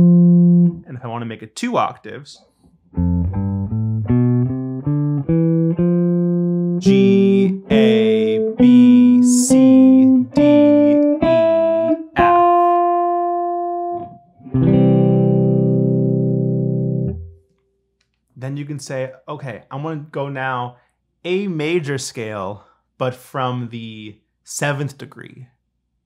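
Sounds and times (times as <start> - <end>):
electric guitar chord ringing: 0.0 - 0.8, 3.0 - 17.4
electric guitar picking a scale: 0.0 - 0.8, 3.0 - 17.4.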